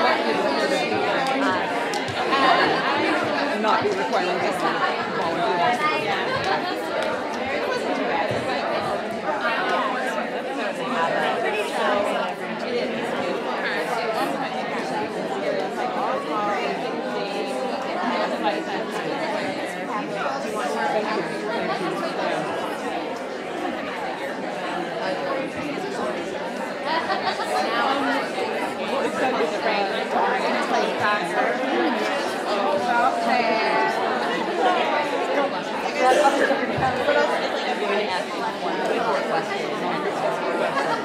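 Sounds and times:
crowd chatter: 0.0 - 41.0.

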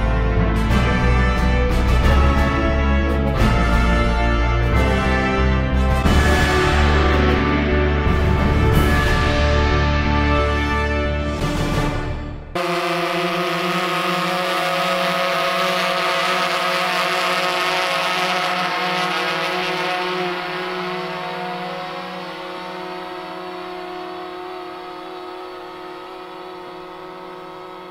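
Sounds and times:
drone buzzing hum: 0.0 - 27.9.

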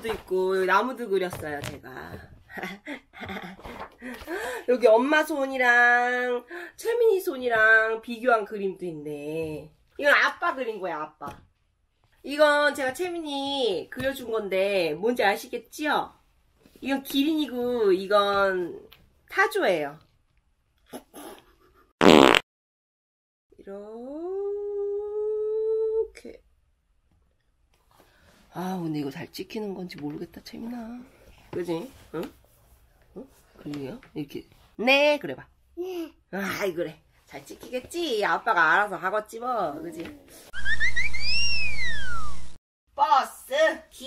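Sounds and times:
buzzy comedy sound effect: 40.6 - 42.6.

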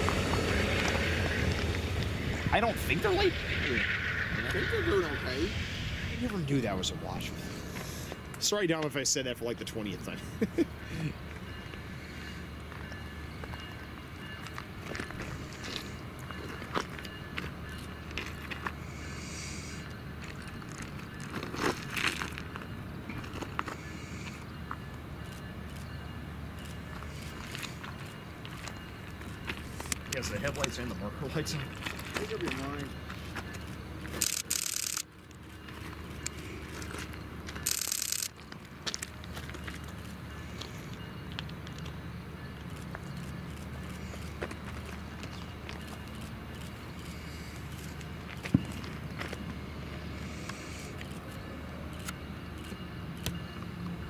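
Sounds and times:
train rumble: 0.0 - 54.0.

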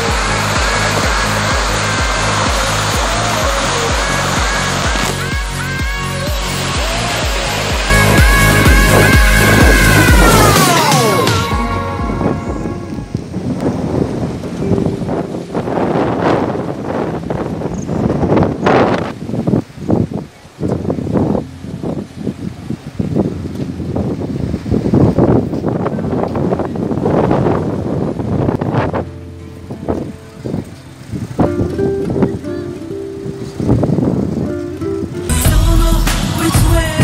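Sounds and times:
music: 0.0 - 13.5, 28.8 - 37.0
wind buffeting microphone: 0.0 - 35.3.

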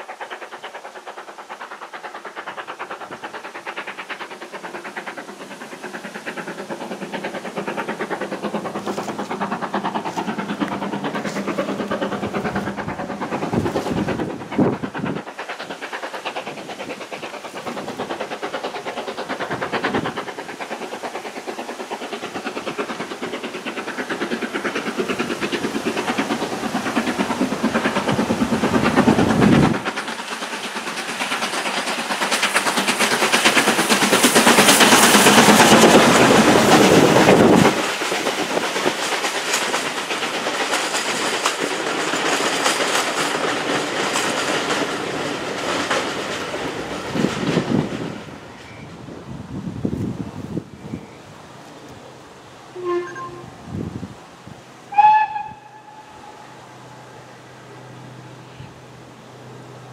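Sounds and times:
clickety-clack of train wheels: 0.0 - 59.9
steam locomotive passing: 0.0 - 59.9.

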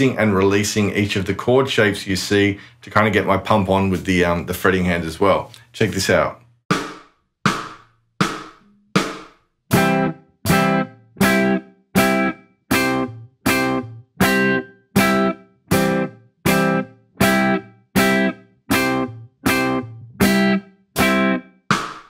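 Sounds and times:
electric guitar chords: 9.7 - 21.5.

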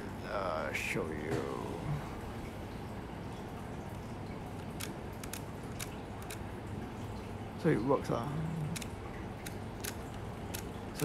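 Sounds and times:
low steady background noise: 0.0 - 11.0
camera body clicks: 4.8 - 6.4.

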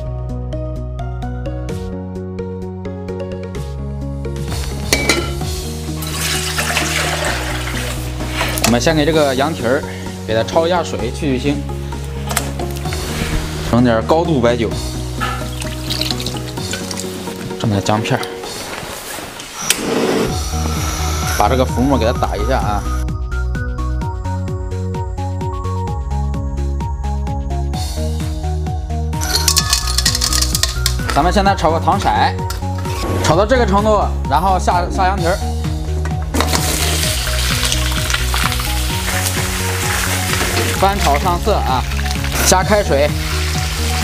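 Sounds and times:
meat sizzling in a hot wok: 15.4 - 17.3, 36.4 - 44.0
gas flame rushing: 18.5 - 21.5.

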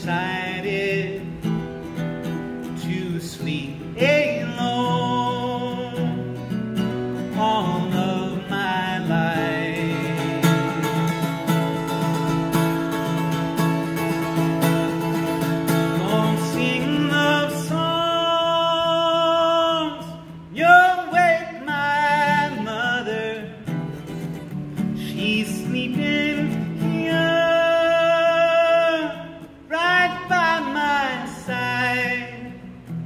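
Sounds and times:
man singing: 0.0 - 1.7, 2.4 - 12.3, 15.3 - 24.0, 24.7 - 32.9
fingerpicked acoustic guitar: 0.0 - 33.0.

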